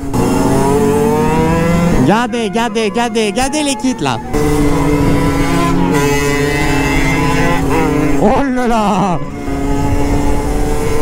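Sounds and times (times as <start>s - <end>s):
dirt bike engine at high revs: 0.0s - 11.0s.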